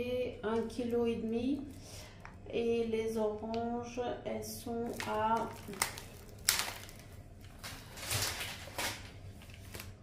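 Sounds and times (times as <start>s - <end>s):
packaging rustling: 4.9s - 10.0s.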